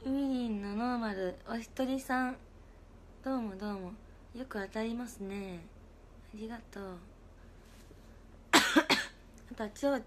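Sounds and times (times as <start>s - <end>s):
woman coughing: 8.5s - 9.2s.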